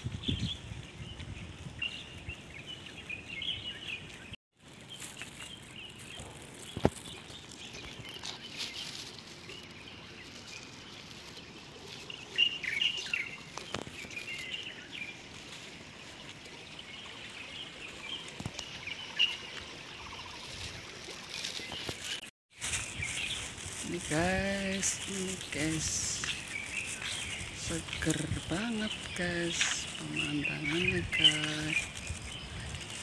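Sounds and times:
small birds chirping: 0.0 - 33.0
steady outdoor hiss: 0.0 - 33.0.

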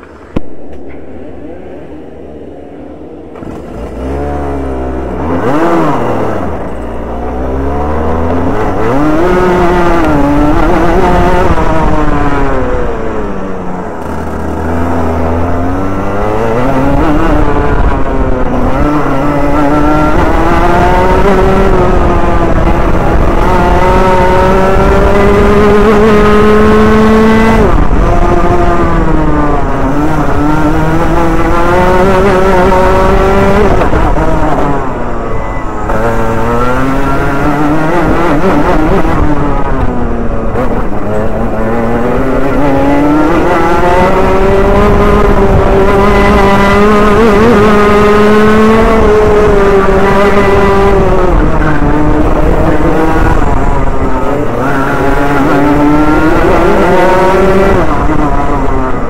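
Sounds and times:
kart engine revving: 2.9 - 59.0.

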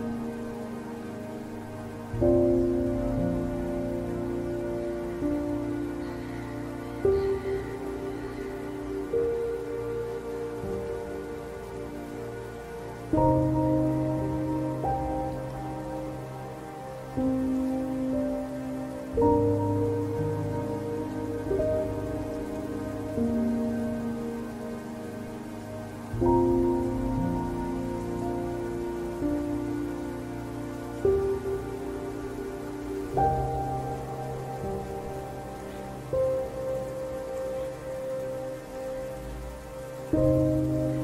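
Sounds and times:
slow ambient music chords: 0.0 - 41.0
steady rain-like hiss: 0.0 - 41.0.

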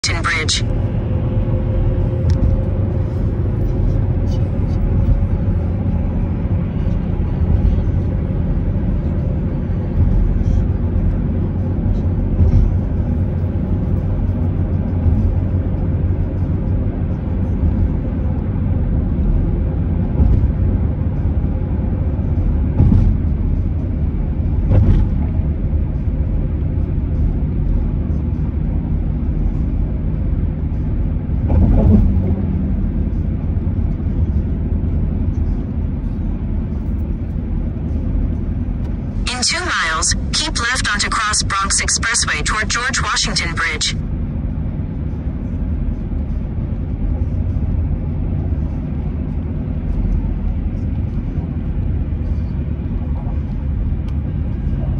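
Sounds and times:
car road rumble: 0.0 - 42.4, 43.0 - 54.9.

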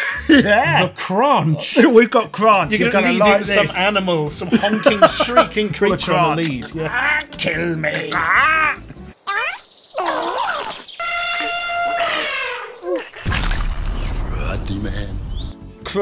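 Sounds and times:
laughter: 4.4 - 5.6
creature squeals: 8.0 - 13.3
falling shrieks: 11.0 - 13.4
low rumble: 13.3 - 15.6.

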